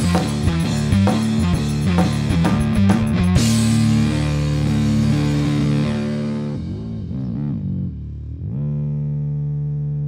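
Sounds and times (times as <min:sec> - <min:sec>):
amplified instrument low drone: 0:00.0 - 0:10.0.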